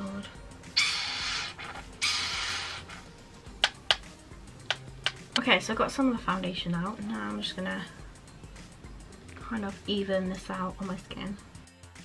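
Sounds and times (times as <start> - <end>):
air hissing from plastic tube: 0.7 - 3.1
sharp clicks: 3.6 - 5.5.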